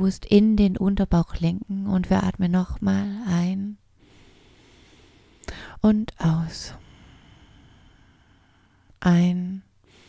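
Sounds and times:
faint outdoor background hiss: 0.0s - 10.0s
person drawing breath: 4.0s - 5.7s, 6.8s - 8.9s.

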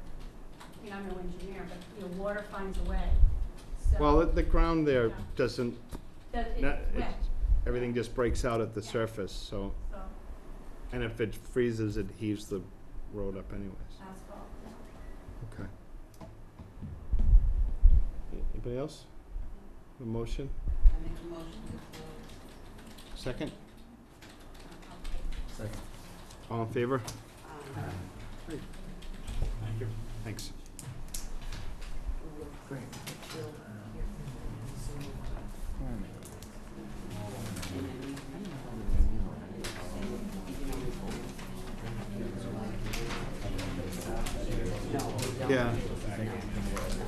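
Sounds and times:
murmured voices: 32.2s - 47.0s
papers being handled: 39.6s - 47.0s.

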